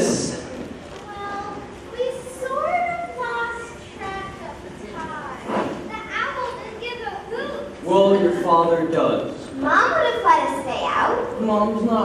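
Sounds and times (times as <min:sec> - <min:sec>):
children speaking: 0:01.0 - 0:08.5, 0:09.4 - 0:11.8.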